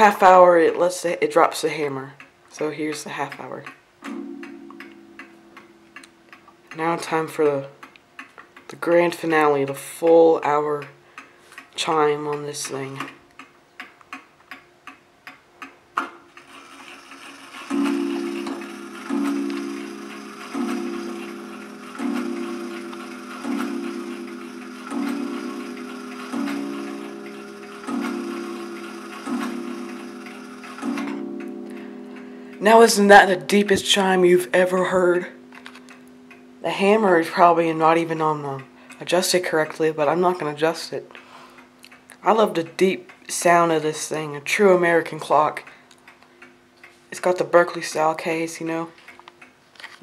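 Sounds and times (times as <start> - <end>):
clock ticking: 1.5 - 34.1.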